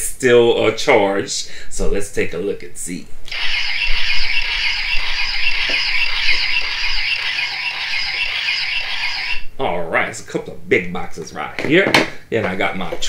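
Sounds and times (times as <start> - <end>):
toy phaser warbling tone: 3.3 - 9.5.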